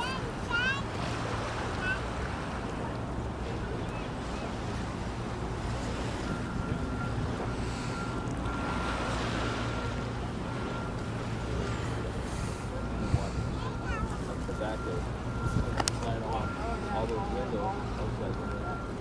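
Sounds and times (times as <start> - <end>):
low steady rumble: 1.9 - 19.0
chatter of voices: 11.7 - 19.0.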